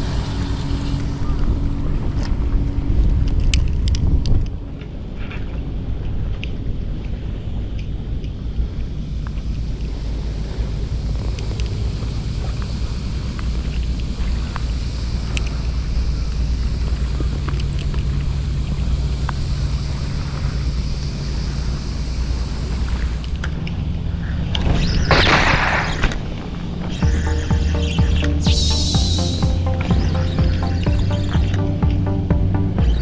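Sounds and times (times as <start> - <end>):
wind buffeting microphone: 0.0 - 27.3
faint ticks: 6.0 - 19.5
background music: 27.0 - 33.0.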